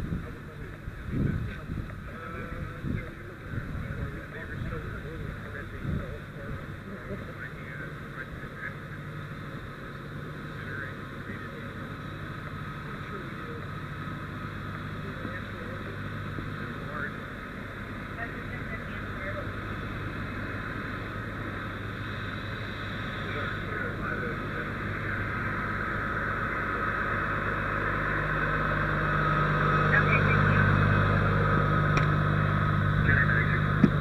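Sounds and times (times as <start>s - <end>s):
diesel engines idling: 0.0s - 34.0s.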